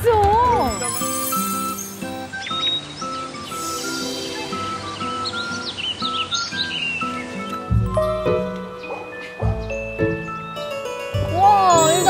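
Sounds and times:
birds chirping: 0.0s - 12.0s
light background music: 0.0s - 12.0s.

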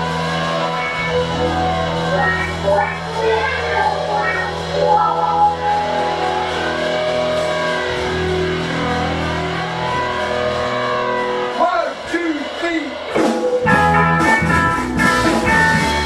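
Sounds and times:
bass guitar: 0.0s - 16.0s
electric guitars bending notes: 0.0s - 16.0s.

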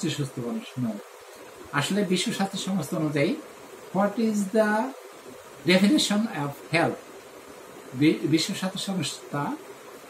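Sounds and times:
man talking: 0.0s - 1.1s, 1.7s - 5.0s, 5.6s - 7.0s, 7.9s - 9.6s.

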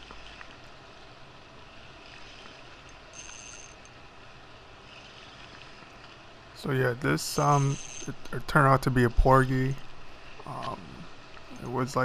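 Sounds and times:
faint high whine: 0.0s - 12.0s
light wind: 0.0s - 12.0s.

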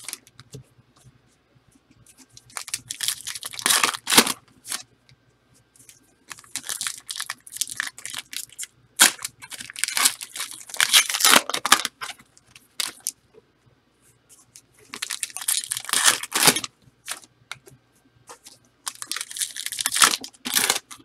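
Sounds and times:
card pack wrapper tearing and crinkling: 2.4s - 4.8s, 6.3s - 13.1s, 14.9s - 17.3s, 18.3s - 21.0s.

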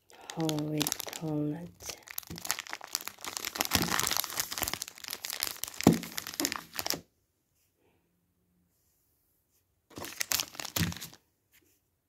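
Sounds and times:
chocolate wrapper crinkling: 0.0s - 7.0s, 9.9s - 11.2s.

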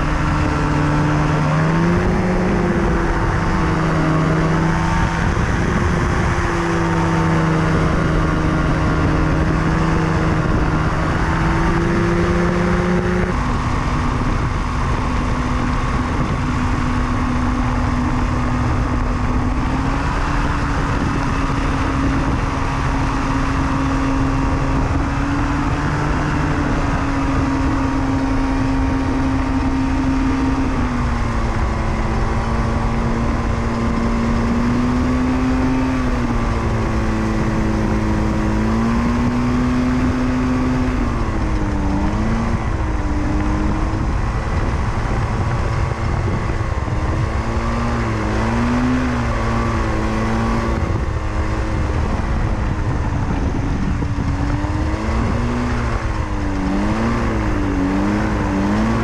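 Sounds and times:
two-stroke engine and propeller: 0.0s - 59.0s.

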